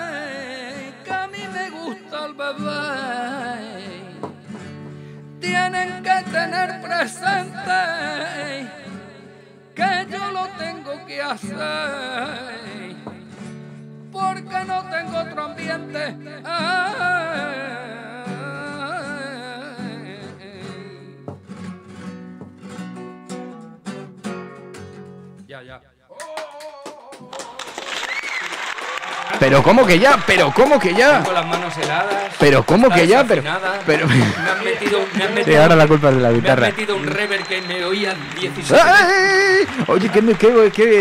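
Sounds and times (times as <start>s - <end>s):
man singing flamenco-style: 0.0s - 4.8s, 5.4s - 13.4s, 14.1s - 21.5s, 26.0s - 27.9s
acoustic guitar strumming: 0.0s - 25.5s, 30.6s - 41.0s.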